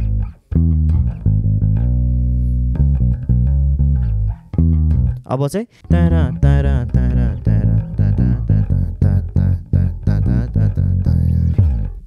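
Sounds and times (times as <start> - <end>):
electric bass plucked: 0.0 - 12.0.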